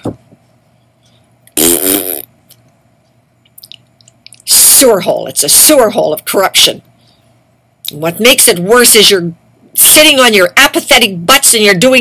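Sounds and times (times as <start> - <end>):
woman blowing a raspberry: 1.6 - 2.3.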